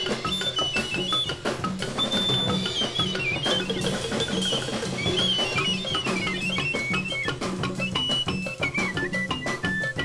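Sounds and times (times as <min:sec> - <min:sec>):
background music with drum beat: 0:00.0 - 0:10.0.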